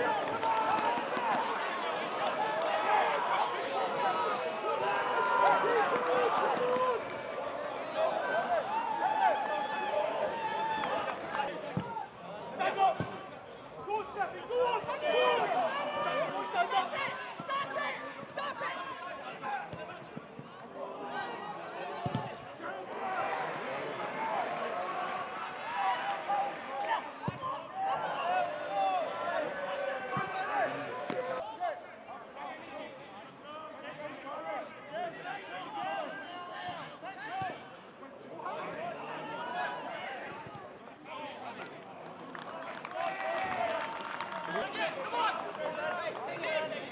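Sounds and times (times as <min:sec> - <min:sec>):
players and spectators shouting: 0:00.0 - 0:46.9.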